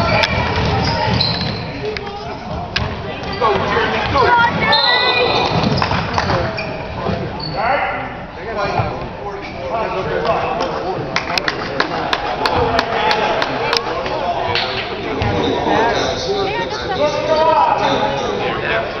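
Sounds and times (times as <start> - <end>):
basketball bouncing: 0.1 - 1.6.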